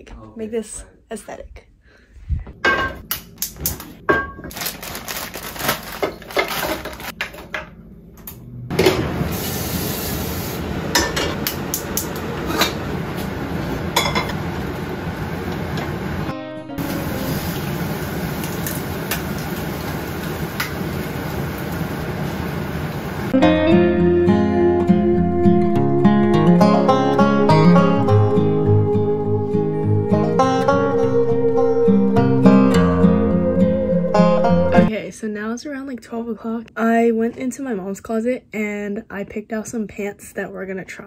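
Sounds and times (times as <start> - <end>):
plastic bag crinkling: 4.5 - 7.1
food sizzling in pans: 9.1 - 10.8, 16.8 - 23.4
soft acoustic guitar music: 23.4 - 34.9.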